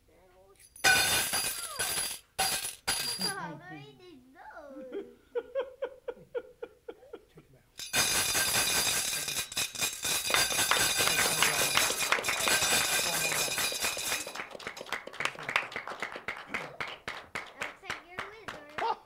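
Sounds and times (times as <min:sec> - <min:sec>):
audience applause: 0:10.3 - 0:19.0.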